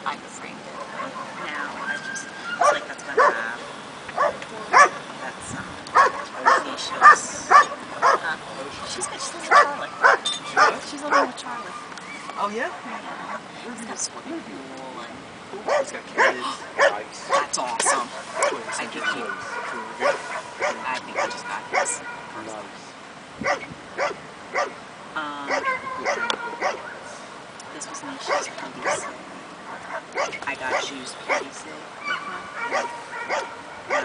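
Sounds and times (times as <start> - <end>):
dog barking: 0.8 - 1.7, 2.6 - 3.6, 4.2 - 5.0, 5.9 - 8.3, 8.9 - 11.8, 15.6 - 22.3, 23.4 - 24.8, 25.5 - 27.0, 27.9 - 34.0.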